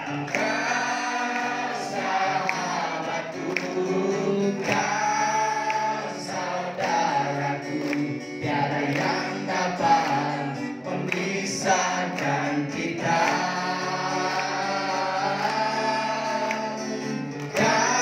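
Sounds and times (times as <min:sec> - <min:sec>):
congregation singing: 0:00.0 - 0:18.0
man singing into a microphone: 0:00.0 - 0:18.0.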